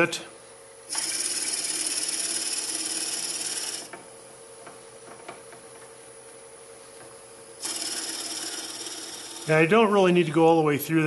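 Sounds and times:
drill bit cutting wood: 0.9 - 3.9, 7.6 - 9.6
lathe humming: 0.9 - 4.0, 7.6 - 10.2.

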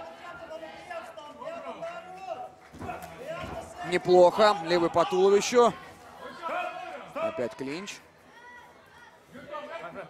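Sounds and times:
voices in arena: 0.0 - 10.0.

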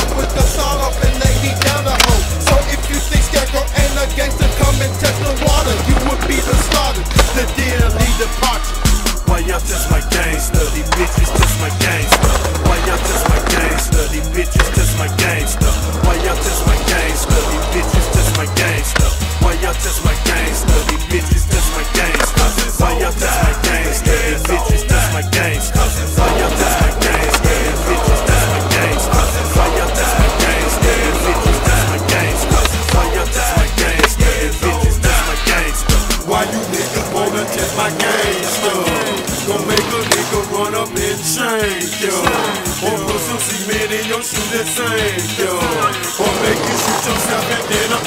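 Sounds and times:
skateboard clacks and landings: 0.0 - 3.6, 10.2 - 19.3, 20.1 - 22.6, 42.2 - 43.2
hip hop beat with bass: 0.0 - 48.0
skateboard wheels rolling on concrete: 0.0 - 48.0
skateboard clacks popping and landing: 1.3 - 2.7, 10.8 - 14.0, 14.6 - 15.5, 22.0 - 22.7, 26.2 - 34.3, 42.2 - 42.8.

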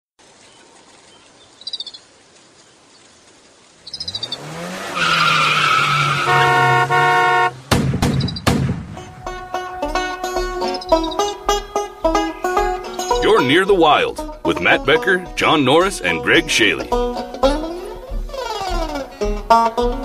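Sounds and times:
rapid chirping trills: 1.4 - 2.1, 3.8 - 4.4, 8.0 - 8.6, 10.3 - 13.2
car engine starting and running: 3.8 - 20.0
car horn: 5.2 - 8.3
banjo music: 6.2 - 7.6, 8.9 - 20.0
sharp bangs: 6.3 - 12.9.

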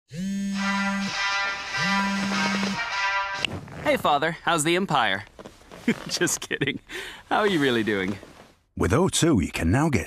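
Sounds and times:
buzzy electronic tones: 0.2 - 3.5.

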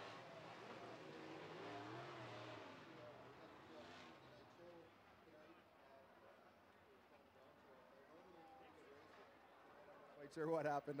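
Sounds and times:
faint race car engines revving: 0.0 - 6.8.

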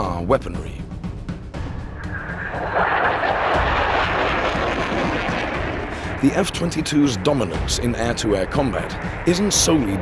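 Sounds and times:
jet flying overhead: 1.7 - 10.0.

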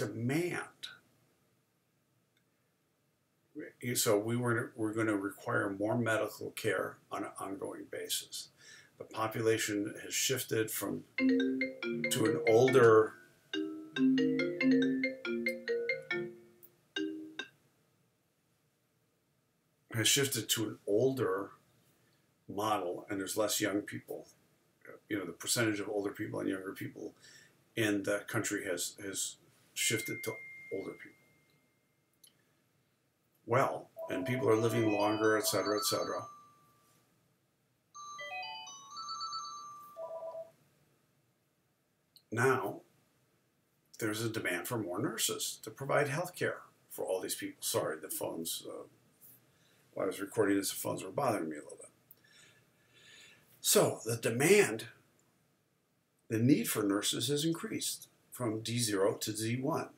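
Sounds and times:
phone ringtone melody: 11.2 - 17.5, 34.0 - 36.8, 38.0 - 40.5.

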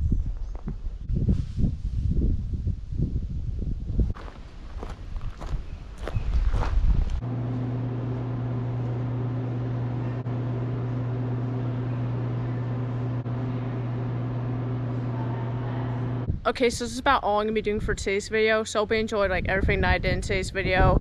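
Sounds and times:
wind rumble on microphone: 0.0 - 7.2, 16.2 - 18.3, 19.0 - 21.0
rustling on microphone: 0.1 - 2.9
electrical machine hum: 5.8 - 18.5.

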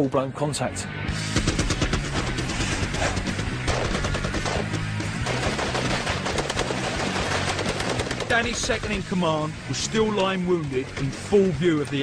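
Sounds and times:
background music with low notes: 0.0 - 12.0
rapid gunfire volleys: 1.2 - 9.2.

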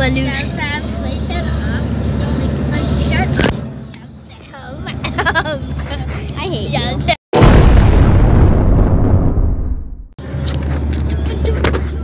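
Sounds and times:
car engine and road noise: 0.0 - 7.2, 10.2 - 12.0.

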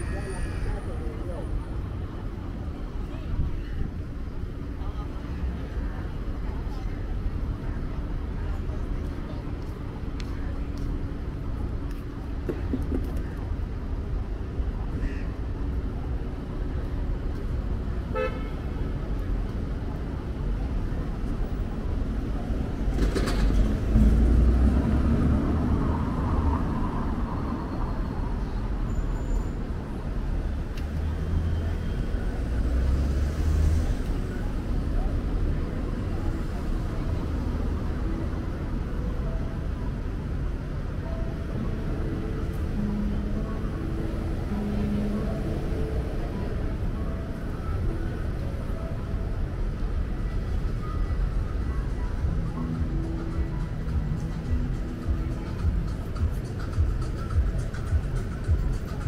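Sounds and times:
cars rumbling past: 15.6 - 49.1
car horn toot: 18.1 - 18.6.

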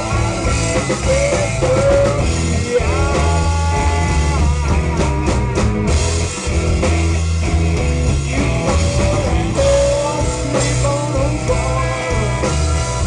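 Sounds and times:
blues band playing: 0.0 - 13.0.

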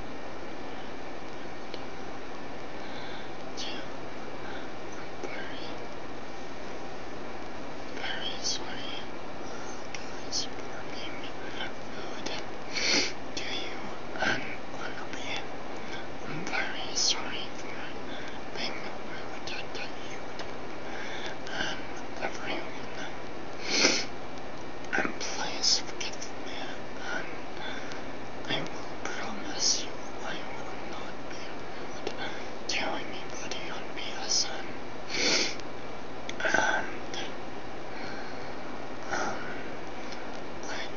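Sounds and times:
steady hiss: 0.0 - 40.9
person whispering: 3.0 - 5.8, 8.0 - 20.3, 21.0 - 24.1, 24.9 - 35.6, 36.4 - 37.4, 39.0 - 39.7, 40.6 - 40.9.

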